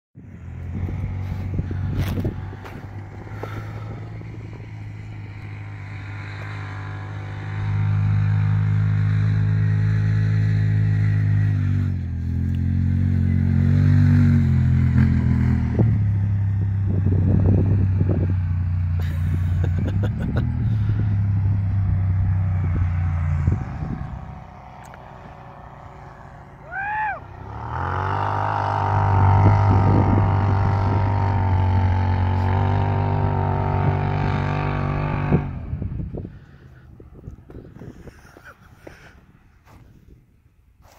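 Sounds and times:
vehicle engine humming: 0.2 - 40.9
rising and falling tone: 20.1 - 36.0.

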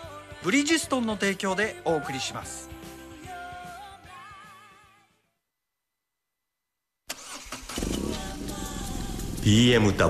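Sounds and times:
motorcycle engine starting: 7.1 - 10.0.

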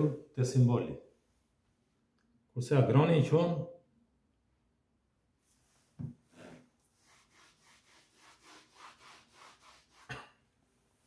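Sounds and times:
eraser rubbing on chalkboard: 6.9 - 10.2.

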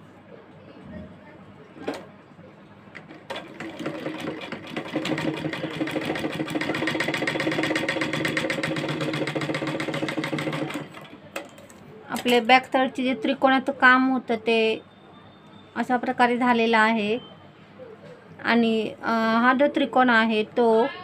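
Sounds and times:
sewing machine stitching: 3.0 - 11.1.

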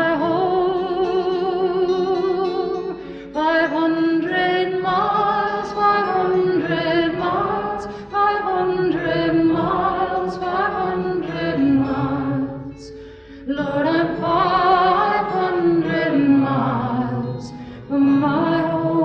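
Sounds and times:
song with layered singing: 0.0 - 19.0.

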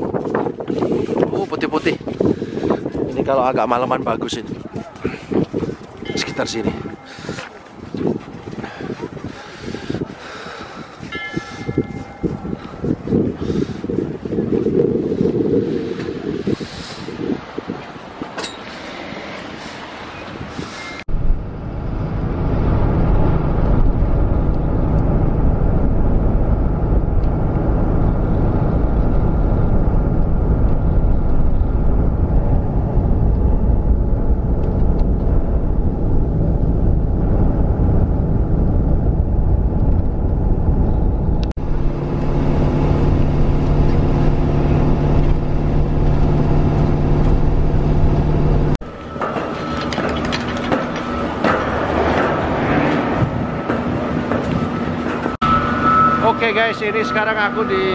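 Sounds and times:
wind buffeting microphone: 0.0 - 55.8
engine hum with low drone: 20.7 - 57.9
vehicle rumble from inside cabin: 21.0 - 48.8.

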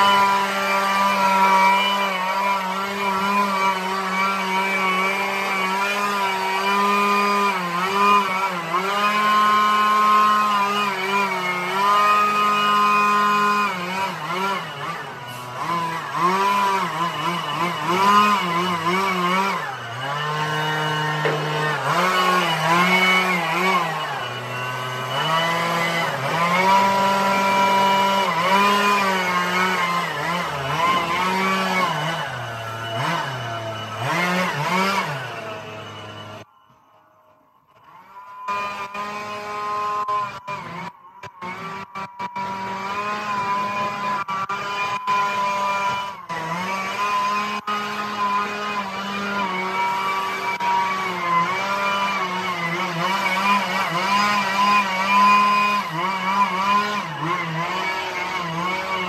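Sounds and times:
leaf blower engine revving: 0.0 - 36.5, 37.8 - 59.0.

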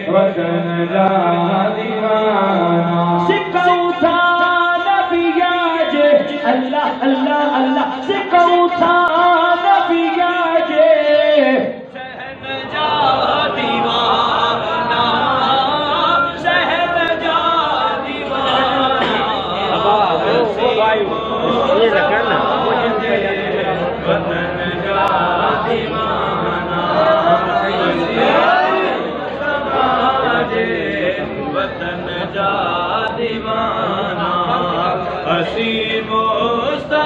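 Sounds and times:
man singing unaccompanied: 0.0 - 37.0.

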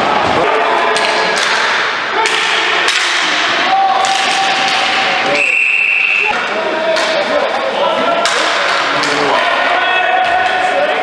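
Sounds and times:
players' voices: 0.0 - 11.0
sticks and ball clacking on boards: 0.9 - 5.4, 6.9 - 7.3, 8.2 - 9.4.

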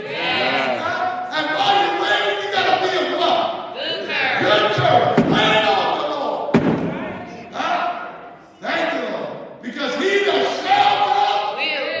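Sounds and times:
man's raised voice echoing: 0.0 - 6.6, 7.2 - 12.0.

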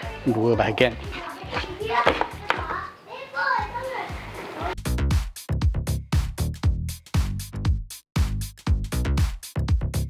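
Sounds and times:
background music: 0.0 - 10.0
child's voice: 1.0 - 4.8.

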